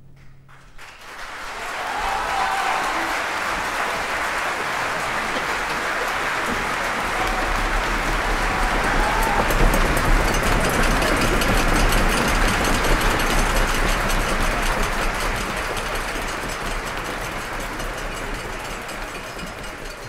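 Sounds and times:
audience applause: 0:00.5 - 0:20.0.

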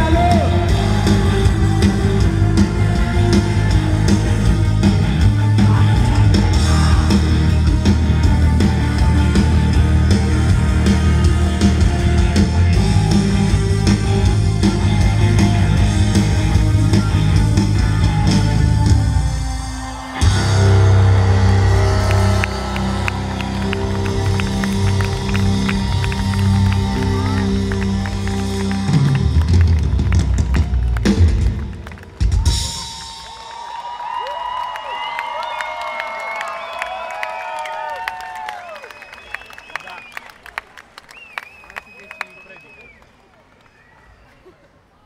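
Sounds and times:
rock band playing: 0:00.0 - 0:33.6
crowd cheering and applauding: 0:00.0 - 0:45.0.

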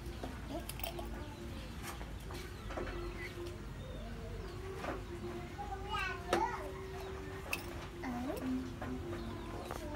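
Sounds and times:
children's voices: 0:03.0 - 0:07.4.

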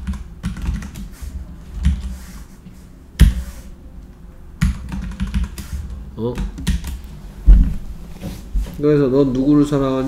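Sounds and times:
computer keyboard keystrokes: 0:00.0 - 0:01.1, 0:04.6 - 0:05.7, 0:06.3 - 0:07.0.

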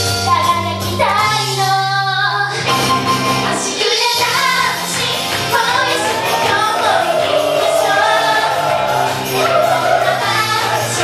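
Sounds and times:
backing music: 0:00.0 - 0:11.0
girls singing into microphones: 0:03.5 - 0:11.0.

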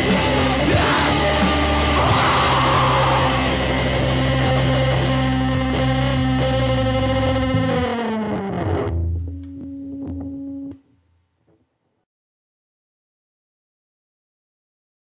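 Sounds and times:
distorted electric guitar chord: 0:00.0 - 0:10.7.

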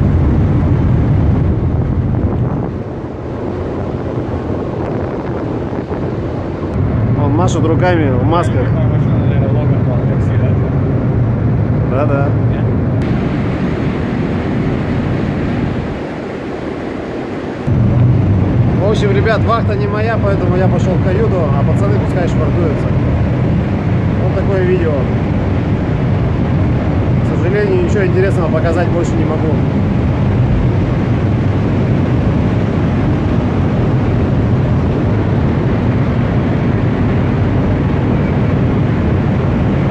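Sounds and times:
ship engine drone: 0:00.0 - 0:39.9
wind buffeting microphone: 0:00.0 - 0:39.9.

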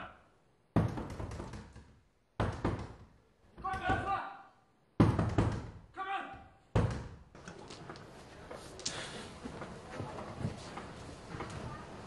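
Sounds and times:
fists pounding on a door: 0:00.8 - 0:01.8, 0:02.4 - 0:04.1, 0:05.0 - 0:05.8.

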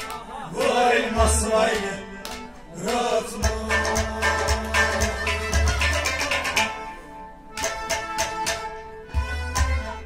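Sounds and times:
sustained melody instruments: 0:01.2 - 0:10.0
sharp percussion strokes: 0:03.4 - 0:07.0.

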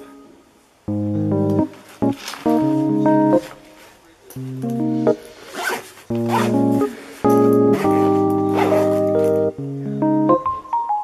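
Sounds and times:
background music with keyboard chords: 0:00.0 - 0:11.0
backpack zipper pulled: 0:05.4 - 0:06.9, 0:07.7 - 0:09.5.

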